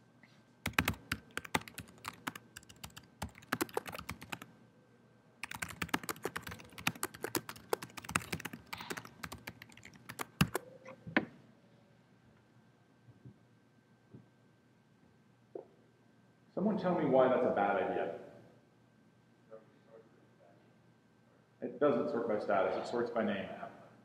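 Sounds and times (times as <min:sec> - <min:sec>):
typing on laptop keyboard: 0:00.7 - 0:04.5, 0:05.4 - 0:10.7.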